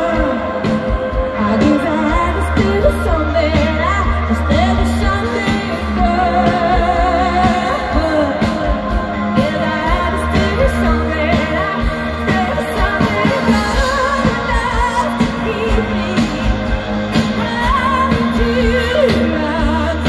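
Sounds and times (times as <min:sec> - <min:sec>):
bass guitar: 0:00.0 - 0:20.0
electric guitars: 0:00.0 - 0:20.0
keyboards: 0:00.0 - 0:20.0
woman singing lead: 0:00.0 - 0:20.0.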